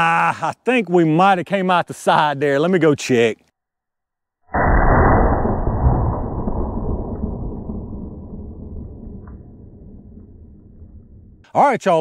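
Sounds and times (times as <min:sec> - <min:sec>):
deep boom impact: 0:04.5 - 0:11.5.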